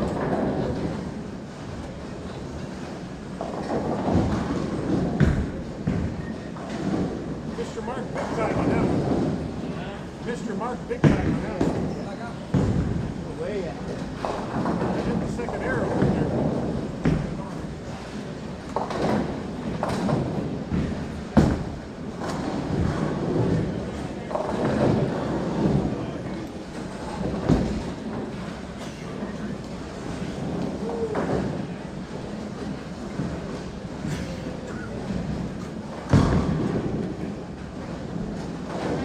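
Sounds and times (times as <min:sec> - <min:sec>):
background chatter: 0:00.0 - 0:39.0
bowling balls rolling: 0:00.0 - 0:39.0
bowling pins crashing: 0:03.2 - 0:09.6, 0:11.0 - 0:34.1, 0:35.0 - 0:39.0.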